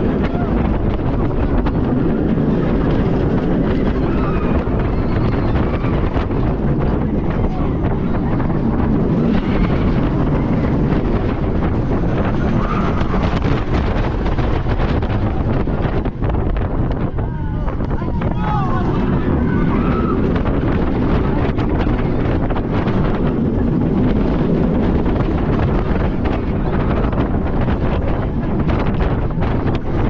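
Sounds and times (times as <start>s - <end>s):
roller coaster running on track: 0.0s - 30.0s
wind buffeting microphone: 0.0s - 30.0s
riders' voices: 17.2s - 19.8s.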